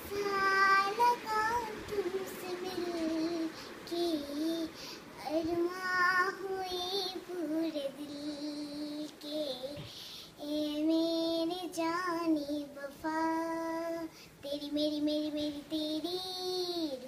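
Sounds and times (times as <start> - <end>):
child singing unaccompanied: 0.0 - 17.0.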